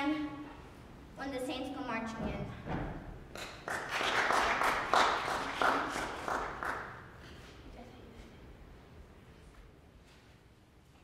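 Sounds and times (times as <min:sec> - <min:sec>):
audience clapping: 0:03.4 - 0:07.2.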